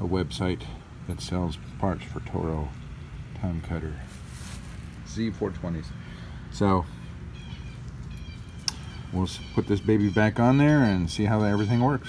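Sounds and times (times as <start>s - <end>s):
low outdoor rumble: 0.0s - 12.0s
faint bird chirps: 5.9s - 12.0s
sharp click: 8.6s - 9.0s.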